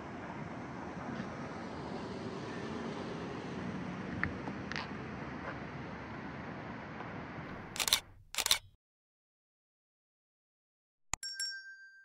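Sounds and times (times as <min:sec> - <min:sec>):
camera shutter clicks: 0:07.5 - 0:08.7.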